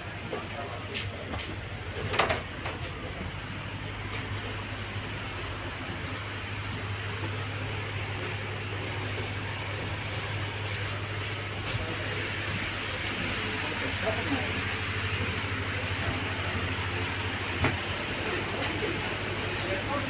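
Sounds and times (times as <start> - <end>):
faint voices: 0.0 - 20.0
railway coach mechanical hum: 0.0 - 20.0.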